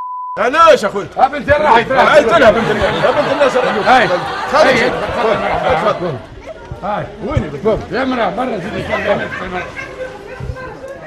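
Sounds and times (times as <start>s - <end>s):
men talking over one another: 0.4s - 10.9s.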